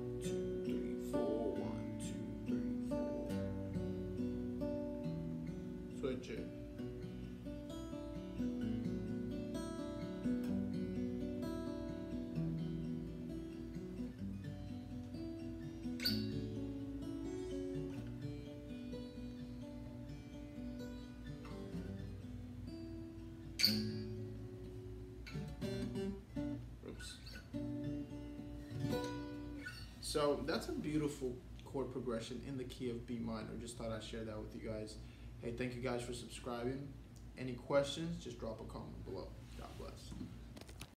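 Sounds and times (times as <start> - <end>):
acoustic guitar picking chords: 0.0 - 40.9.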